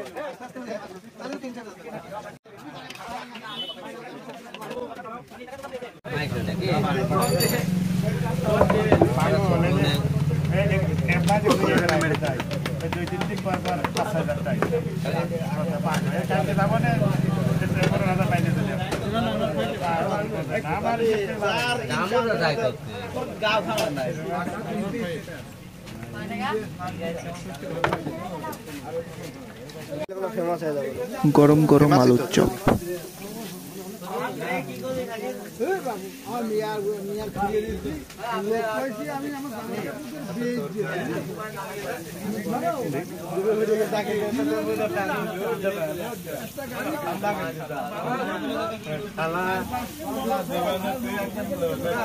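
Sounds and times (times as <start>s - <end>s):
people talking: 0.0s - 52.0s
food sizzling in hot oil: 6.8s - 10.5s, 30.8s - 52.0s
person talking: 31.2s - 32.9s.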